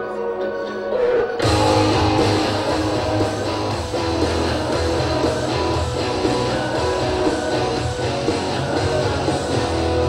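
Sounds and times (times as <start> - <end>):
strummed guitar and bass music: 1.4 - 10.0.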